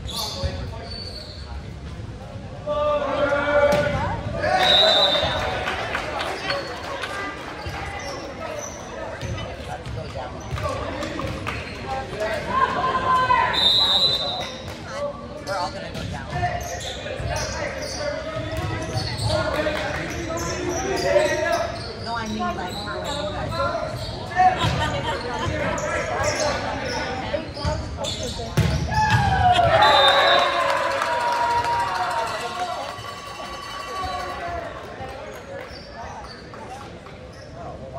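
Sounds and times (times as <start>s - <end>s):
players calling and shouting: 2.6s - 36.5s
referee's whistle: 4.6s - 5.5s, 13.5s - 14.6s, 29.6s - 30.6s.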